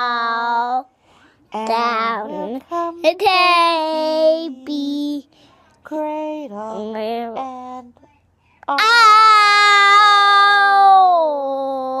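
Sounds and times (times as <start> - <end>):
girl singing long ah: 0.0 - 12.0.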